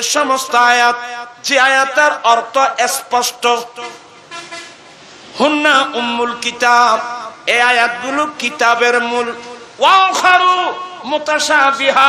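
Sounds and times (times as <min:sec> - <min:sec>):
man preaching over loudspeakers: 0:00.0 - 0:04.1, 0:05.4 - 0:12.0.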